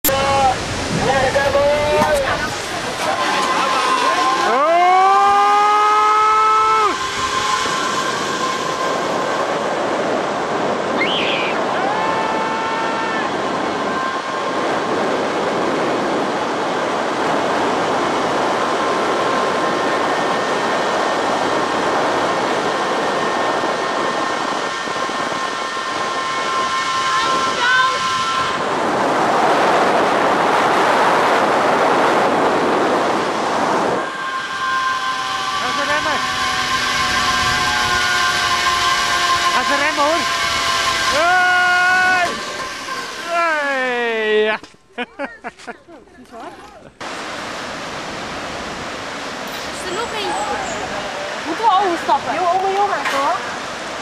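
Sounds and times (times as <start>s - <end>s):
rushing noise: 0.0s - 44.4s, 47.0s - 54.0s
zip line pulleys whining: 0.1s - 45.3s, 46.2s - 54.0s
rising high-pitched sound: 2.3s - 14.9s, 19.0s - 44.4s.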